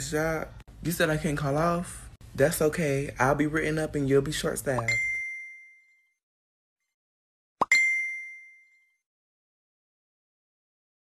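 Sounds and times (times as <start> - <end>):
bell-like dings: 4.9 - 6.2, 7.7 - 9.1.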